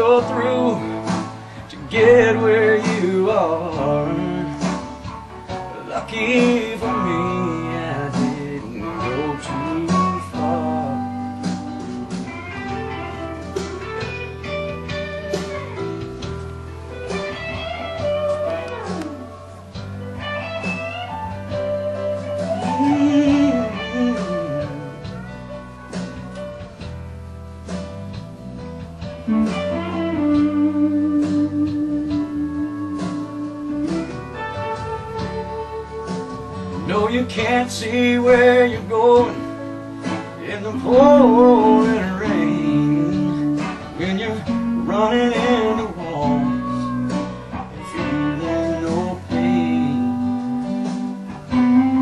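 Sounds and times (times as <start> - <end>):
lead guitar bending notes: 0.0 - 26.8, 28.3 - 52.0
country band backing: 0.0 - 52.0.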